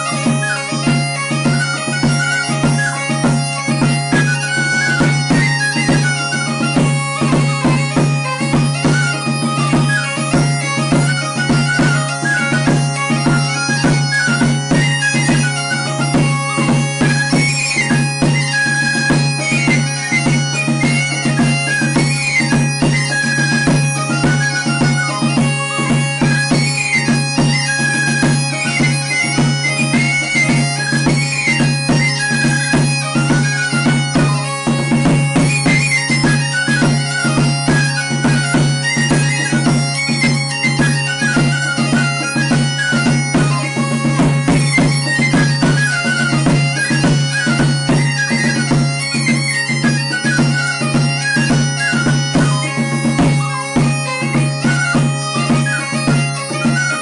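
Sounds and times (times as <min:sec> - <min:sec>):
bagpipe drone and melody: 0:00.0 - 0:57.0
high pipe melody: 0:00.0 - 0:57.0
steady drumbeat: 0:00.0 - 0:57.0.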